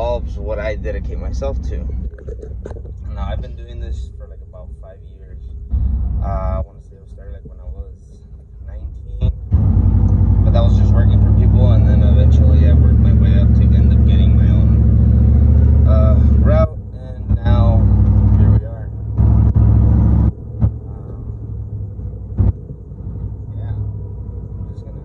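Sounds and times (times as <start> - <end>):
quiet low rumble: 0.0 - 25.0
vehicle engine humming: 0.0 - 25.0.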